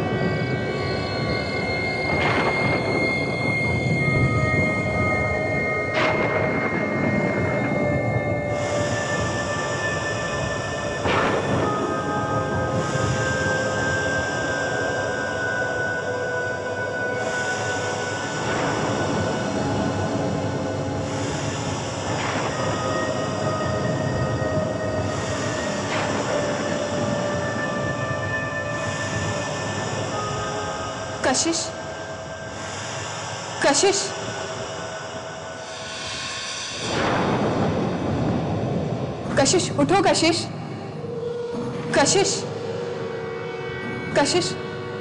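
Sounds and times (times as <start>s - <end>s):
eerie horror drone score: 0.0s - 45.0s.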